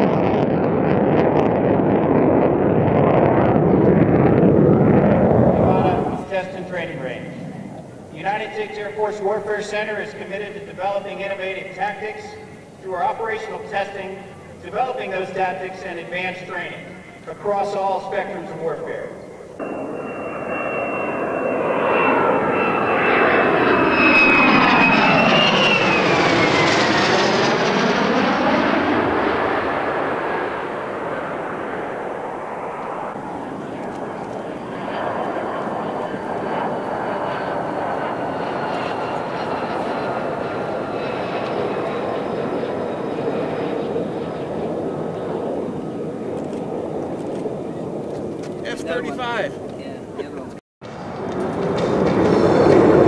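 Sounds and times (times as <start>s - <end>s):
jet engine rumble: 0.0s - 53.0s
jet passing low overhead: 0.0s - 53.0s.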